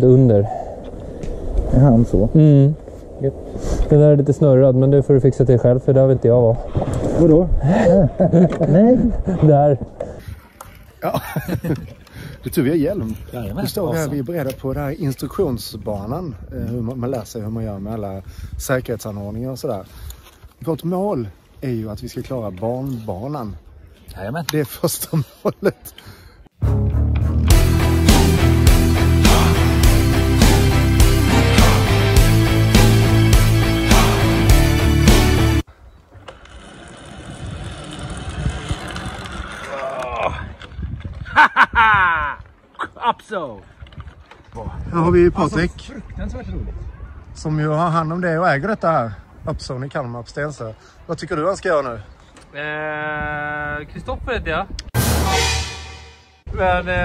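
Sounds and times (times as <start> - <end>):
man talking: 0.0 - 0.6, 1.7 - 6.6, 12.4 - 19.9, 56.5 - 57.0
zip-line pulleys whirring on cable: 36.4 - 39.8.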